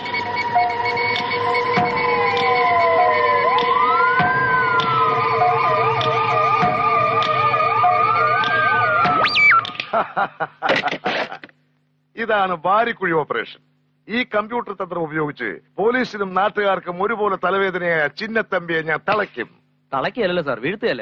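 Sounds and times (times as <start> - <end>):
beeping tones with sliding pitches: 0.0 - 9.7
fast warbling siren-like tone: 0.0 - 9.7
sharp pitch sweep: 0.0 - 9.7.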